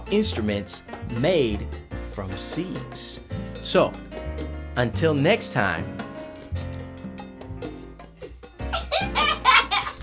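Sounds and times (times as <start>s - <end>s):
background music with bass line: 0.0s - 10.0s
man laughing: 8.7s - 10.0s.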